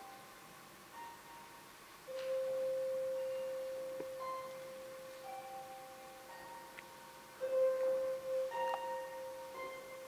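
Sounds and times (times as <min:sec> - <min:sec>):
soft higher notes: 0:00.0 - 0:10.0.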